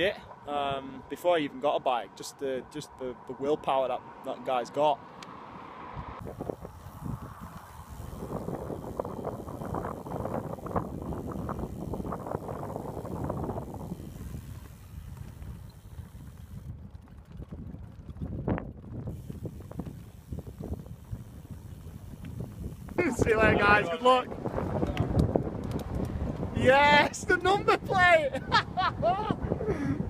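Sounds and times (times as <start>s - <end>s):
wind buffeting microphone: 5.8s - 30.0s.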